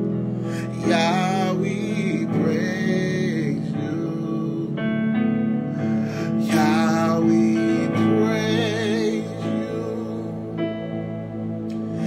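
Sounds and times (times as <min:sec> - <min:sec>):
backing music: 0:00.0 - 0:12.0
man singing: 0:00.5 - 0:10.8.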